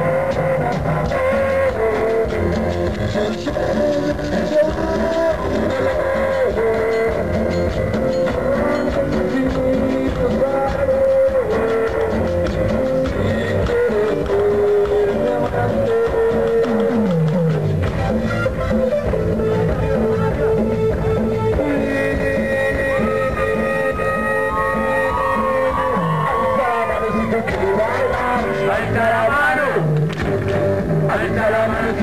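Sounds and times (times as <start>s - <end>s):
bass: 0.0s - 32.0s
drums and percussion: 0.0s - 32.0s
keyboard melody: 0.0s - 32.0s.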